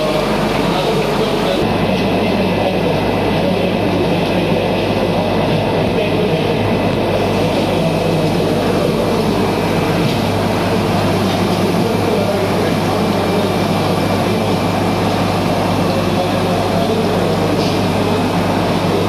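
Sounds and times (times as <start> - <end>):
low machine hum: 0.0 - 19.0.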